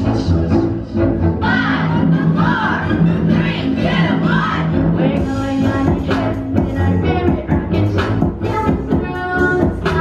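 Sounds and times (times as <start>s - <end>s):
song with singing over speaker: 0.0s - 10.0s
steady bass: 0.0s - 10.0s.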